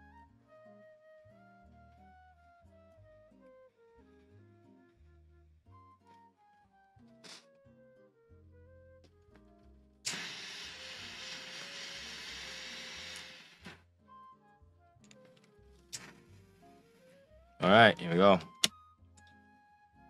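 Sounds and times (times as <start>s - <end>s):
soft background music: 0.0s - 20.0s
torch lighter jet hissing: 10.1s - 13.8s, 16.0s - 16.2s.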